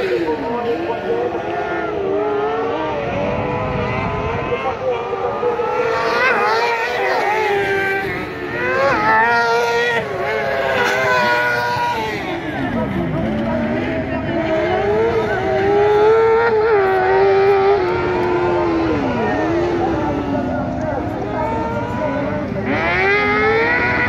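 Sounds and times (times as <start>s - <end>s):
buggy engines revving: 0.0s - 24.0s.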